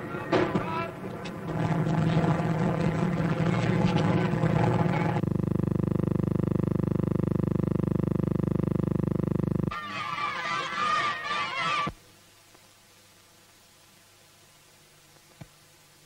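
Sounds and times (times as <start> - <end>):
engine-like drone with fast beat: 1.4 - 5.3.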